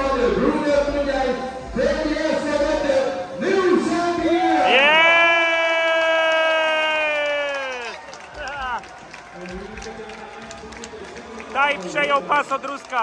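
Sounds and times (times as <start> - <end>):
crowd cheering: 4.3 - 13.0.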